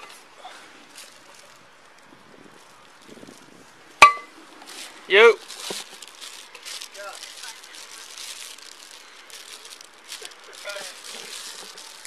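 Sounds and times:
microphone hiss: 0.0s - 12.0s
plastic bag crinkling: 0.9s - 3.7s, 4.6s - 12.0s.

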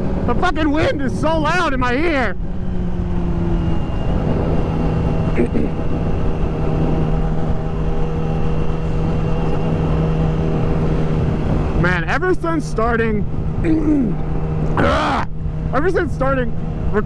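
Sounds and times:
motorcycle engine cruising: 0.0s - 17.0s
wind rushing over microphone: 0.0s - 17.0s.

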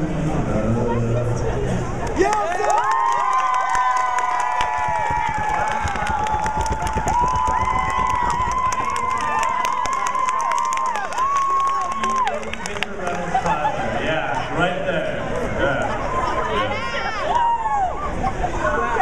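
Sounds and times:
scattered clapping: 2.0s - 13.3s
crowd screaming and cheering: 2.0s - 14.5s, 15.3s - 19.0s.

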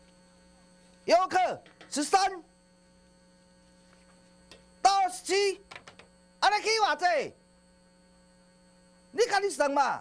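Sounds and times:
faint mains hum: 0.0s - 10.0s
man speaking: 1.0s - 2.5s, 4.8s - 5.7s, 6.4s - 7.4s, 9.2s - 10.0s.

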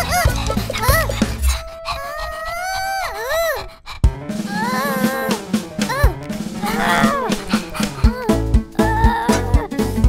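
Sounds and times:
light background music: 0.0s - 3.5s, 4.1s - 10.0s
drawn-out rising vocal sound: 4.4s - 8.7s.

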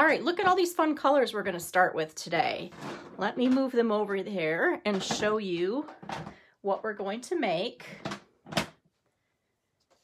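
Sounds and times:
plastic cases scraping on table: 2.7s - 3.6s.

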